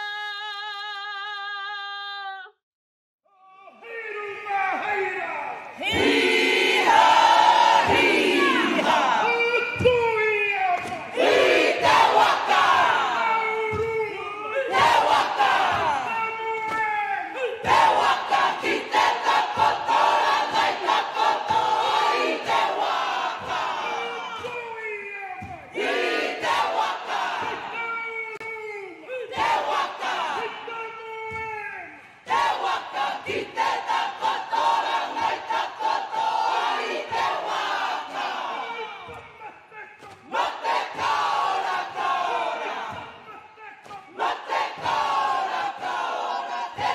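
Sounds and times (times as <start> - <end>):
group chanting in unison: 4.7 - 10.0, 10.8 - 24.7, 25.4 - 28.0, 29.0 - 30.8, 31.8 - 46.9.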